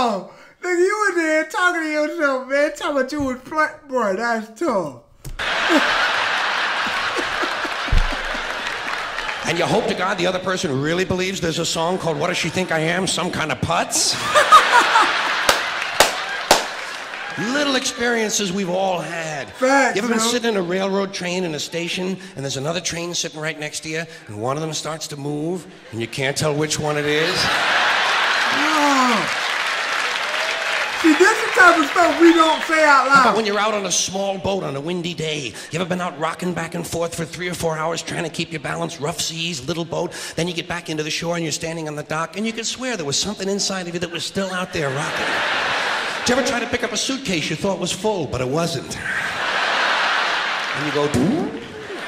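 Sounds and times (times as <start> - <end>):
audience laughing: 5.4 - 10.4, 11.7 - 18.2, 25.7 - 30.2, 31.0 - 33.8, 44.7 - 47.5, 49.0 - 52.0
audience applauding: 5.4 - 13.3, 14.2 - 18.8, 26.8 - 34.1, 44.8 - 46.9, 49.2 - 52.0
man chuckling: 5.6 - 6.2, 6.8 - 9.0.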